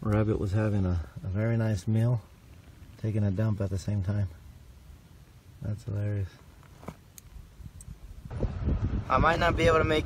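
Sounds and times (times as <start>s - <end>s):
wind on microphone: 7.3s - 10.0s.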